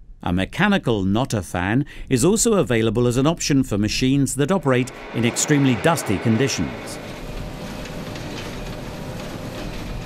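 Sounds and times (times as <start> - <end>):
deep low hum: 4.6 - 9.1.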